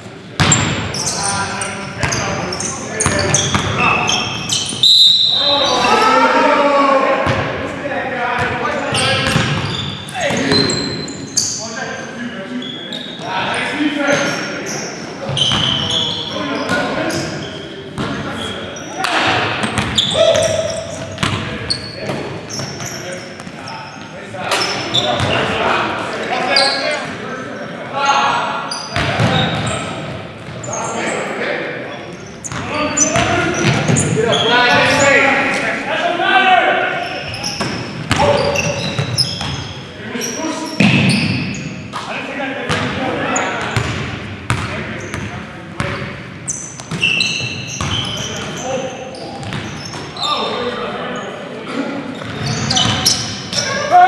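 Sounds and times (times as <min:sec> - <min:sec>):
sneaker squeaks: 0:00.3 - 0:06.2, 0:08.4 - 0:25.7, 0:26.3 - 0:35.6, 0:36.9 - 0:42.1, 0:42.7 - 0:51.4, 0:52.1 - 0:54.0
players calling out: 0:00.4 - 0:54.0.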